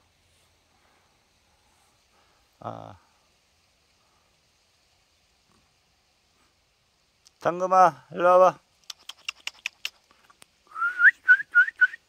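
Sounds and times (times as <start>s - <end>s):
person whistling rising whistles: 10.7s - 12.0s.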